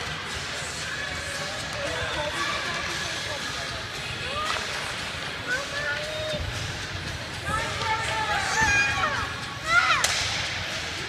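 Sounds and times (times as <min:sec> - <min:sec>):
ice rink ambience: 0:00.0 - 0:11.0
hockey puck struck crack: 0:10.0 - 0:10.4.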